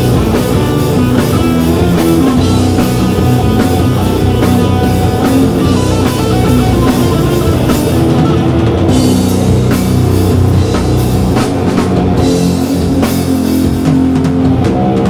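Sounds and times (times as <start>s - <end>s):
bass guitar: 0.0s - 15.0s
distorted electric guitars: 0.0s - 15.0s
drum kit: 0.0s - 15.0s.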